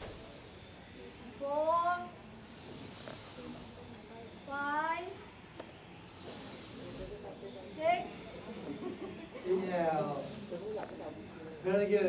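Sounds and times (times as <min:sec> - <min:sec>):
hissing breaths: 0:00.0 - 0:12.0.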